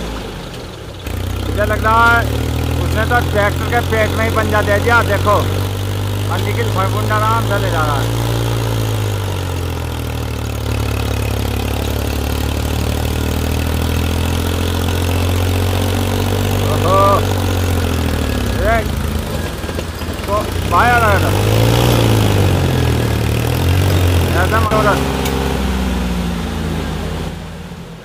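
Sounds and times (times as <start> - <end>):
tractor diesel engines labouring: 0.0 - 28.0.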